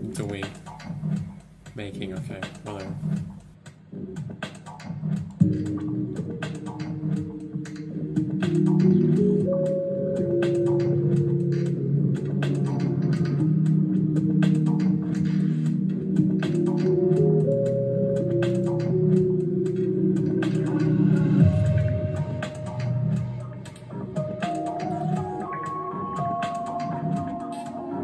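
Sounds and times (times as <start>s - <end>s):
electronic music: 0.0s - 28.0s
clicky percussion ticking: 0.1s - 3.6s
organ-like synth chords: 5.4s - 28.0s.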